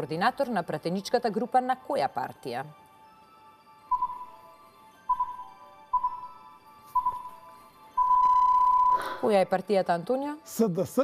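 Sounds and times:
long steady beep: 3.8 - 9.3
short electronic beep: 7.0 - 7.4, 8.0 - 9.0.

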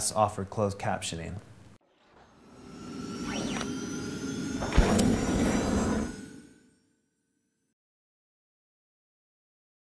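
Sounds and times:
sharp hit: 2.1 - 6.8
whoosh with pitch glides: 2.3 - 6.9
shimmering wash: 2.3 - 7.5.

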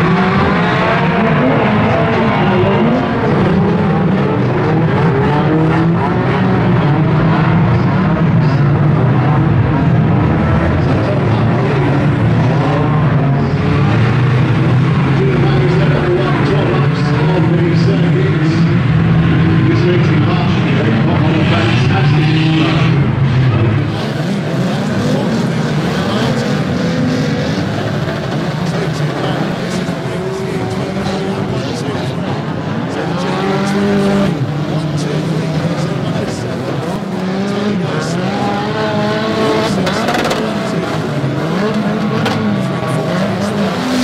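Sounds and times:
race car engines droning: 0.0 - 44.0.

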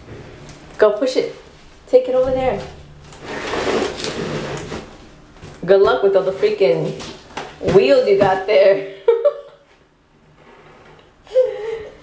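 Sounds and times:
cardboard box sliding on wooden floor: 3.2 - 5.0.

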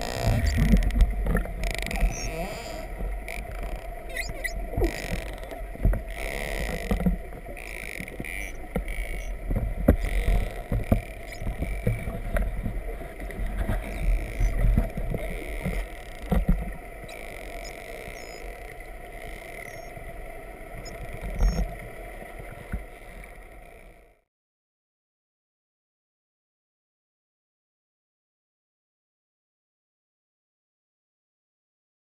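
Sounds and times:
whale clicks: 0.0 - 24.1
low water noise: 0.0 - 24.3
high chirps: 4.1 - 4.6.

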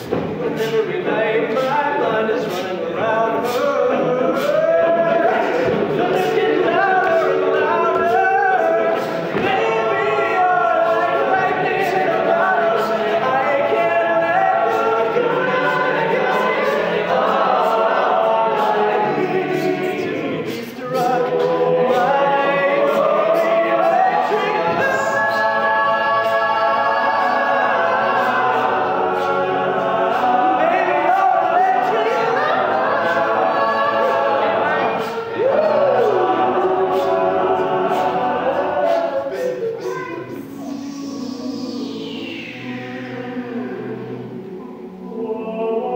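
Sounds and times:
lead singer: 0.0 - 45.9
sustained backing voices: 0.0 - 45.9
voice gliding up and down: 39.3 - 44.8.

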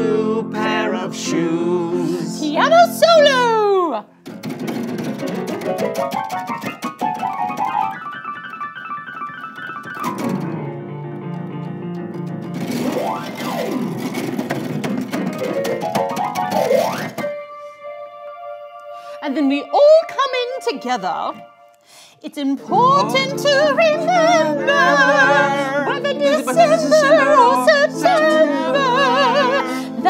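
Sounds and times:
electronic keyboard piano solo: 4.3 - 21.8.

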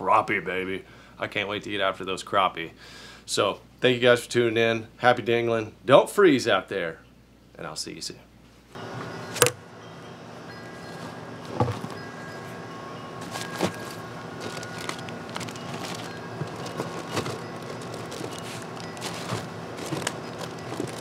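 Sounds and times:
faint held tones: 8.8 - 21.0
gear clunking in storage compartment: 11.0 - 12.4, 13.2 - 21.0.

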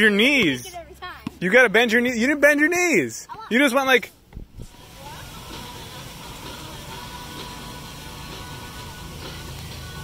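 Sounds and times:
faint background music: 3.4 - 10.0.

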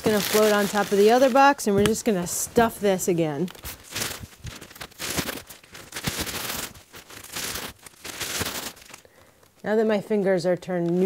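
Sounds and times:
newspaper crumpling: 0.0 - 9.6.

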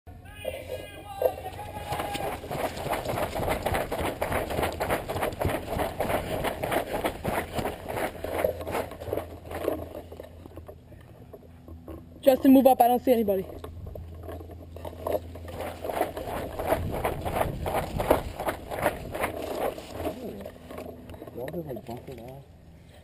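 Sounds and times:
running footsteps on grass: 0.6 - 10.2, 14.9 - 20.6
gear jolting against camera: 13.6 - 21.1.

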